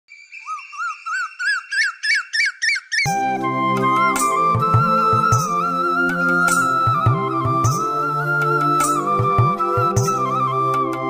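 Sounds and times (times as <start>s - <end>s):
koel whistled calls: 0.1s - 11.0s
flute melody: 3.1s - 11.0s
drum beats: 4.0s - 5.6s, 6.4s - 7.9s, 8.8s - 10.3s.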